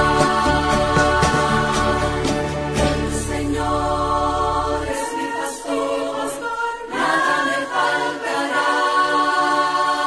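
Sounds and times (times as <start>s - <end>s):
choir singing long held notes: 0.0s - 10.0s.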